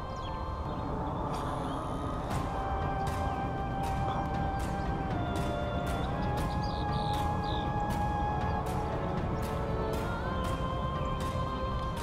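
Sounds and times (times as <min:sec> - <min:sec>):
low wind rumble on microphone: 0:00.0 - 0:12.0.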